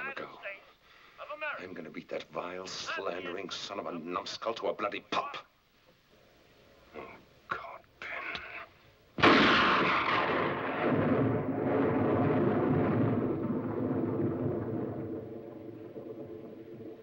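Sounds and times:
loud blast: 9.2s - 16.9s
dense rumble: 9.2s - 17.0s.

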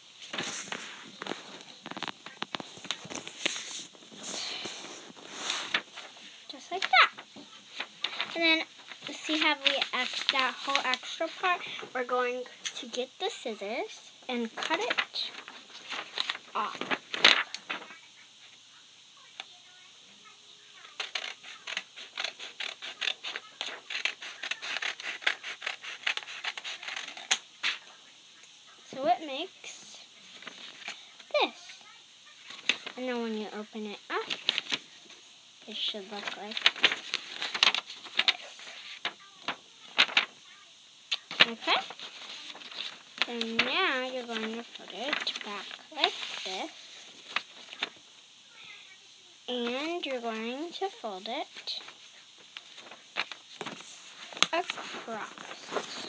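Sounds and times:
paper rustling and crinkling: 0.2s - 12.2s, 14.3s - 18.0s, 20.8s - 27.8s, 30.2s - 31.7s, 32.3s - 40.4s, 41.1s - 48.0s, 49.5s - 56.0s
scissors snipping paper: 21.0s - 27.4s.

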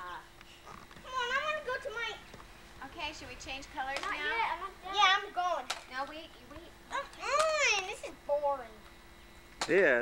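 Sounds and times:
children chattering and calling out: 0.0s - 8.9s.

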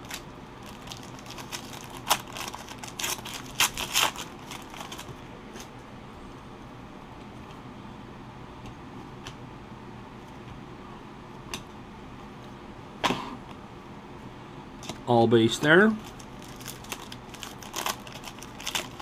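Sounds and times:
foil wrapper crinkling: 0.0s - 5.7s, 16.0s - 19.0s.

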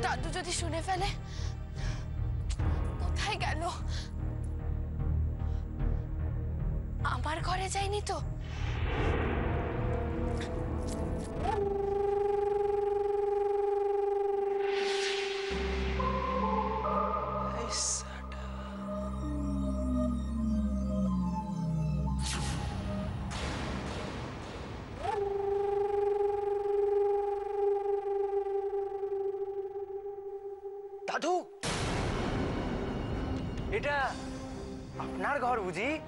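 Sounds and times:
swish: 8.5s - 10.8s
sustained electronic tone: 8.7s - 22.8s, 25.0s - 31.2s.

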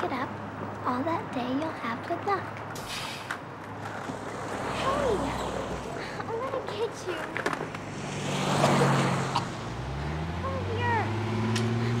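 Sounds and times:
skateboard rolling on sidewalk: 1.5s - 9.4s
car passing: 3.0s - 12.0s.

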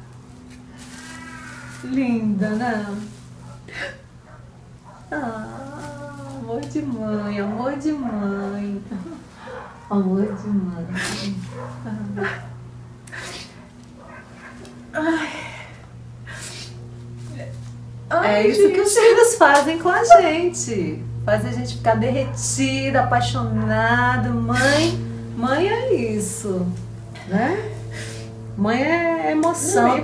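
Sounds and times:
steady low hum: 0.0s - 30.0s
woman crying: 3.7s - 4.1s, 5.1s - 7.8s, 8.7s - 9.4s, 10.8s - 12.5s, 14.9s - 16.6s, 18.2s - 20.6s, 29.7s - 30.0s
woman sobbing: 3.7s - 4.1s, 5.1s - 6.5s, 8.8s - 9.4s, 10.8s - 12.5s, 14.9s - 16.6s
sharp sniffling breath: 13.1s - 13.7s, 16.3s - 16.9s, 27.8s - 28.4s.

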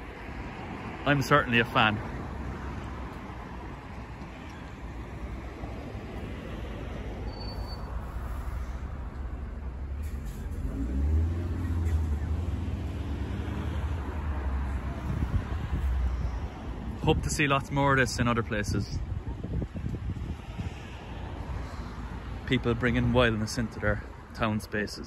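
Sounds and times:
truck engine rumble: 0.0s - 19.9s
road traffic passing: 0.0s - 25.0s.

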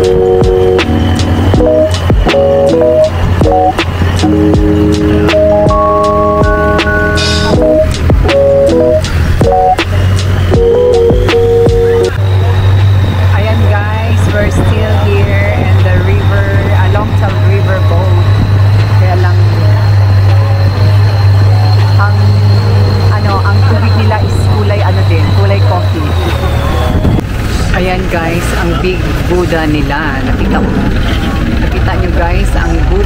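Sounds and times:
boat engine droning with whine: 0.0s - 33.0s.

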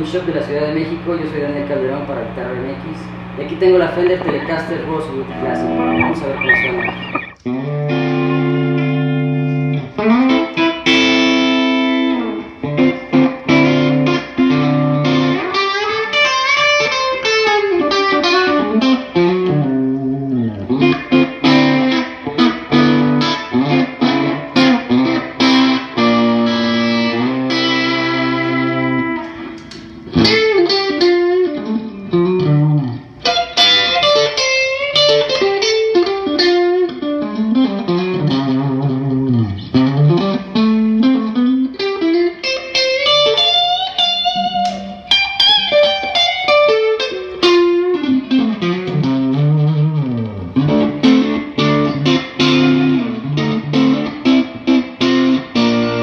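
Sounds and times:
electric guitar playing: 3.0s - 56.0s.

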